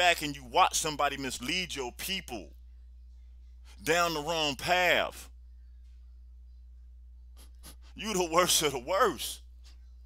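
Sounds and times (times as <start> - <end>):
man speaking: 0.0 - 2.5, 3.8 - 5.3, 7.9 - 9.4
steady low hum: 0.0 - 10.0.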